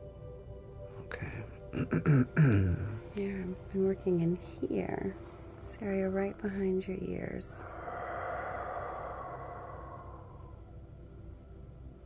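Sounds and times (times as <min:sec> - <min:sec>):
low background hum: 0:01.2 - 0:12.0
long breathy exhale: 0:07.5 - 0:11.0.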